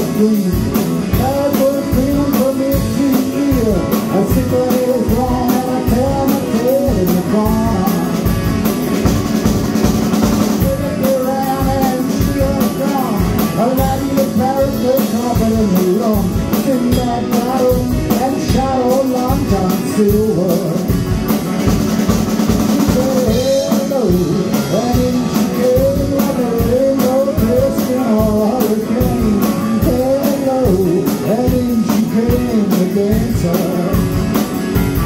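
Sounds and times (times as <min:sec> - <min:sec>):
drum kit beat: 0:00.0 - 0:35.0
electric guitar lead line: 0:00.0 - 0:35.0
electric keyboard: 0:00.0 - 0:35.0.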